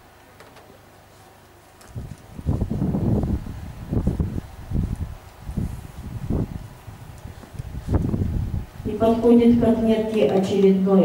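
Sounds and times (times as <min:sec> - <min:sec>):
wind buffeting microphone: 0:01.9 - 0:10.7.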